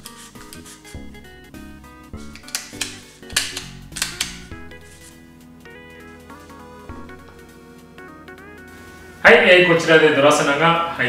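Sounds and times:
stapler clicking shut: 0:02.2 - 0:04.6.

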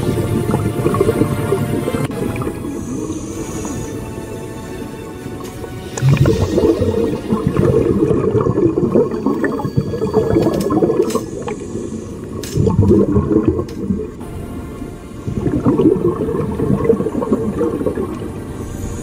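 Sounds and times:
muffled underwater bubbling: 0:00.0 - 0:19.0.

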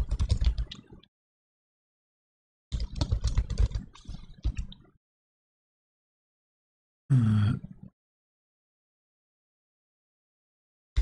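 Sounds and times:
computer keyboard typing: 0:00.0 - 0:00.9, 0:02.7 - 0:04.7.

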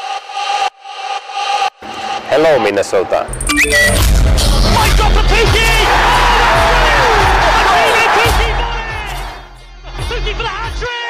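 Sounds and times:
highlight video music: 0:03.3 - 0:11.0
commentator shouting excitedly: 0:04.7 - 0:09.2.

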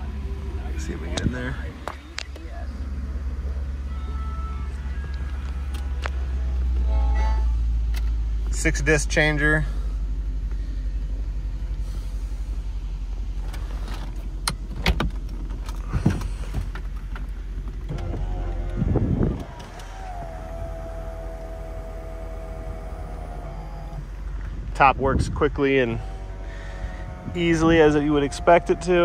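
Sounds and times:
low steady hum: 0:00.0 - 0:29.0
motor whining: 0:17.8 - 0:24.6, 0:25.9 - 0:29.0.

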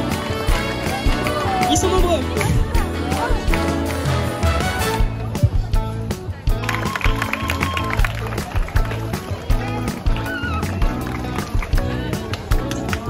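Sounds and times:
upbeat music with steady beat: 0:00.0 - 0:13.0.

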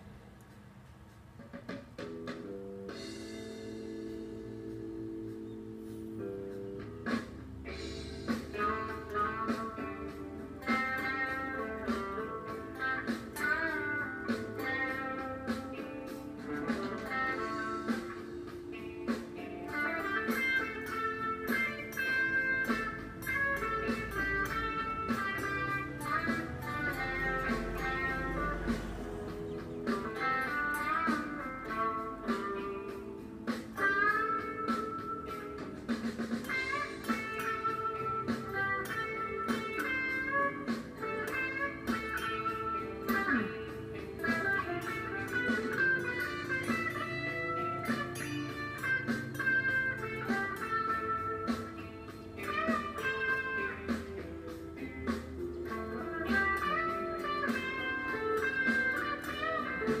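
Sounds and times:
electric guitar lead with bends: 0:02.0 - 1:00.0.

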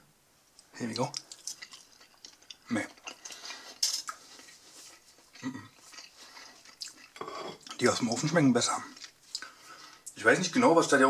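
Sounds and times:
crunchy chewing: 0:01.0 - 0:10.1.

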